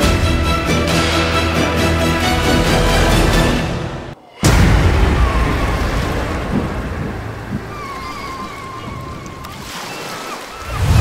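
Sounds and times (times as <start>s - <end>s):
deep boom: 4.4s - 7.9s
surf washing onto beach: 4.5s - 11.0s.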